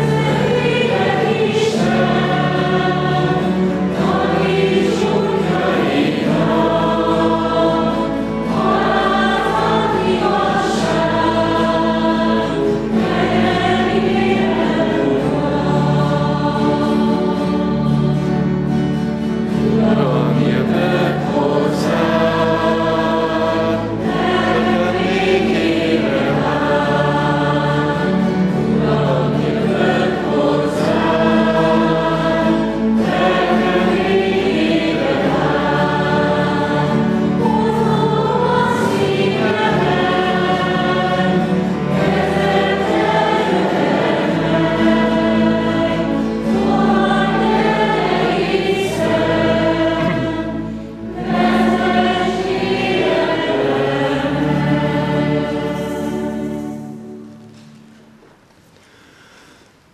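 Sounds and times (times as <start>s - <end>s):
sustained low accompanying notes: 0.0s - 57.5s
congregation singing a hymn: 0.0s - 58.0s.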